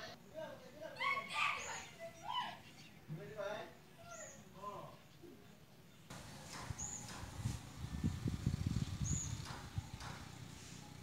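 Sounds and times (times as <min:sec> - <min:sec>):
bird chirps: 0:05.9 - 0:07.6, 0:08.8 - 0:11.0
low uneven rumble: 0:06.1 - 0:11.0.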